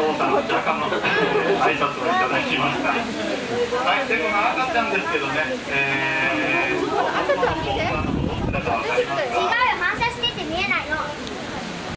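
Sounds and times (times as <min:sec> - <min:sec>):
children talking: 0:00.0 - 0:11.9.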